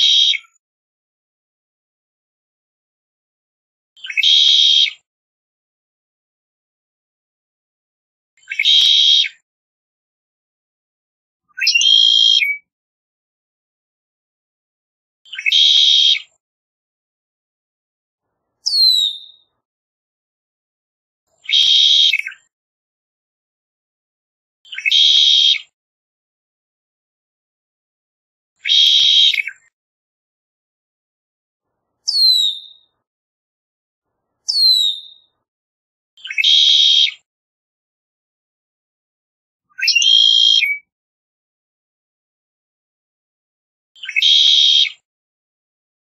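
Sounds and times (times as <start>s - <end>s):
blackbird song with trill: 4.0s - 5.0s, 8.4s - 9.4s, 11.5s - 12.7s, 15.3s - 16.4s, 18.6s - 19.6s, 21.4s - 22.5s, 24.7s - 25.8s, 28.6s - 29.7s, 32.1s - 33.0s, 34.5s - 35.4s, 36.2s - 37.3s, 39.7s - 40.9s, 44.0s - 45.0s.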